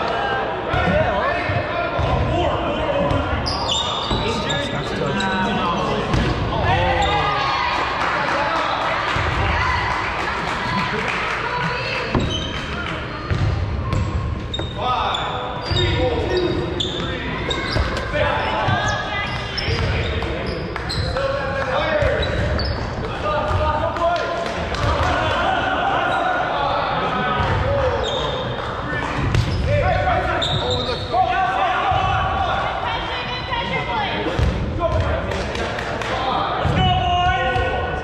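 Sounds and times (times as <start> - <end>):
players shouting and chattering: 0.0 - 38.0
balls bouncing on gym floor: 12.1 - 14.8, 21.8 - 25.1.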